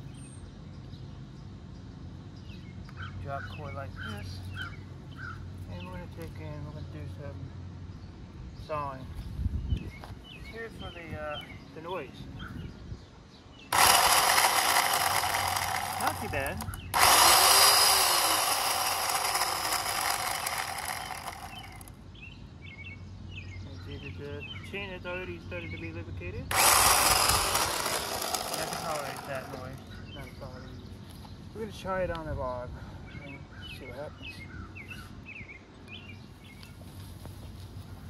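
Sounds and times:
small birds chirping: 0:00.0 - 0:38.0
electric chainsaw running: 0:13.7 - 0:22.0, 0:26.5 - 0:29.8.

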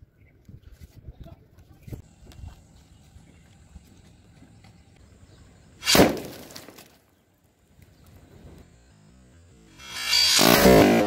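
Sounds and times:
loud gun bang: 0:05.8 - 0:06.6
watermelon bursting apart: 0:05.8 - 0:06.9.

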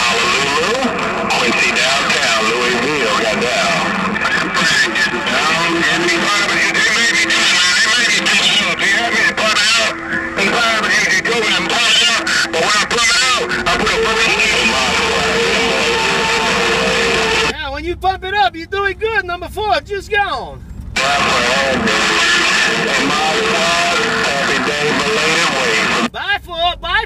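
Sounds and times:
garbled radio voices: 0:00.0 - 0:17.6, 0:18.8 - 0:27.0
radio static: 0:00.0 - 0:17.6, 0:21.0 - 0:26.2.

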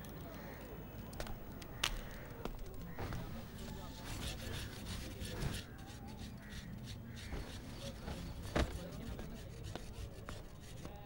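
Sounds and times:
crows cawing: 0:00.2 - 0:03.8
cloth rustling: 0:07.2 - 0:09.2.

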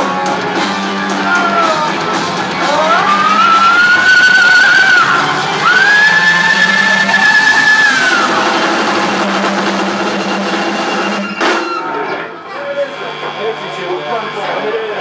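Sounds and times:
low drone of organ and bass: 0:00.0 - 0:11.3
rock band playing live: 0:00.0 - 0:12.4.

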